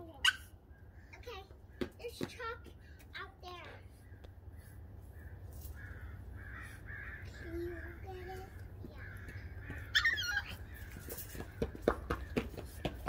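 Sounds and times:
puppy yapping: 0.2 - 0.5, 9.9 - 10.6.

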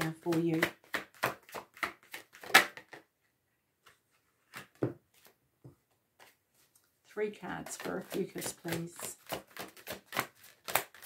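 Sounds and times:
cards being shuffled: 0.0 - 3.1, 3.8 - 5.4, 6.2 - 6.8, 7.6 - 11.0.

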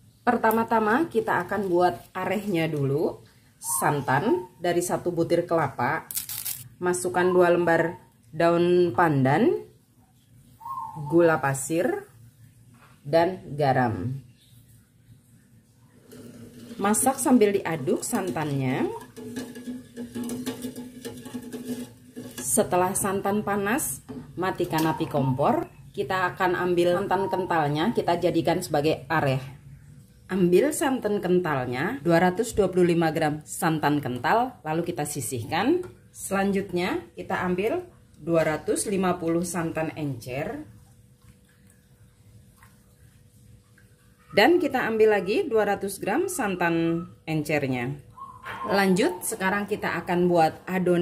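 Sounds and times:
faint steady hum: 0.0 - 51.0.

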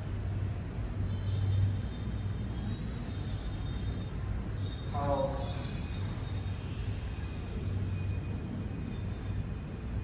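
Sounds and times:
low rumble of room noise: 0.0 - 10.0.

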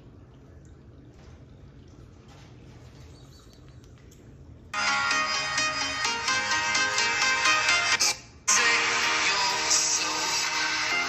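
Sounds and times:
electronic dance music from phone speaker: 4.8 - 11.0.

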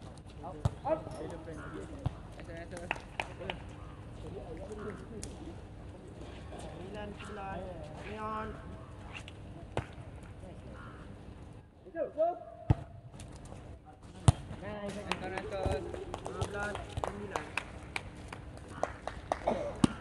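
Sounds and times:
players' voices: 0.4 - 12.9, 13.6 - 17.6
volleyball slaps: 19.7 - 20.0.

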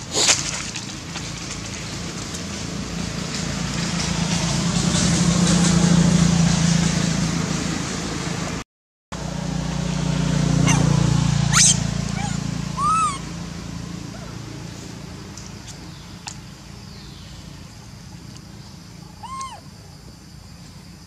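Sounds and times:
monkey calls: 10.6 - 13.4, 19.0 - 19.7.

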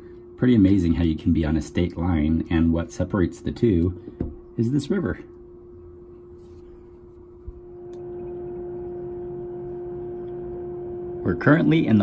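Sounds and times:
steady droning tone: 0.0 - 12.0
higher tone: 5.6 - 12.0.

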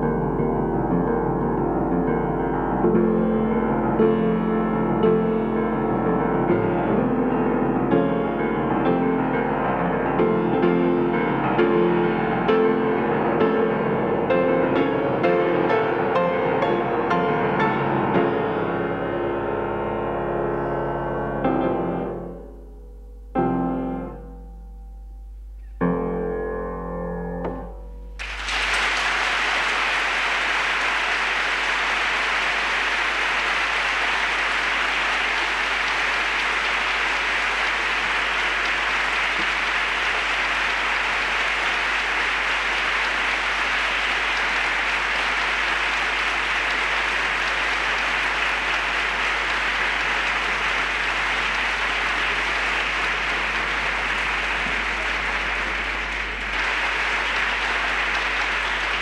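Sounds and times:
large audience applauding: 7.8 - 18.8, 28.2 - 59.0.

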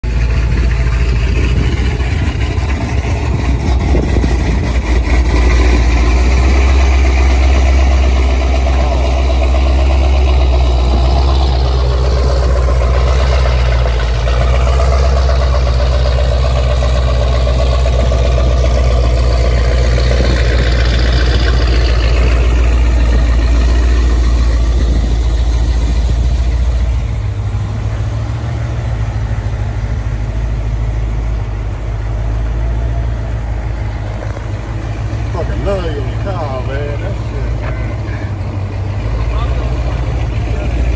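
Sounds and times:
deep car exhaust note: 0.0 - 40.9.

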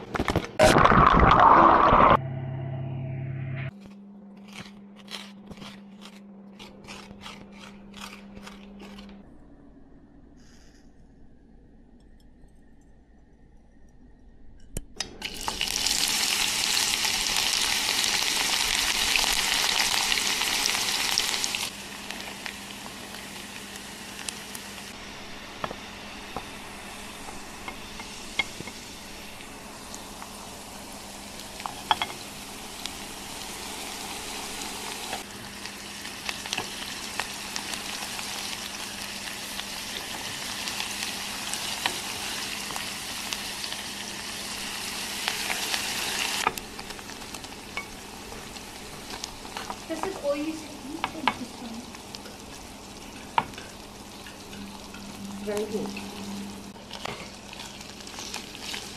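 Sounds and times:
onions sizzling in hot oil: 15.2 - 58.9.

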